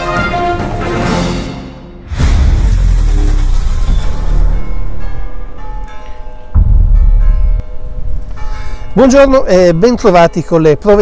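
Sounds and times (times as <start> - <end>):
deep bass hits: 6.5 - 8.3.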